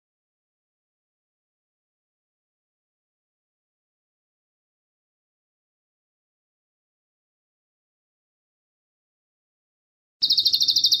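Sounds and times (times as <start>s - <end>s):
bird chattering song: 10.2s - 11.0s.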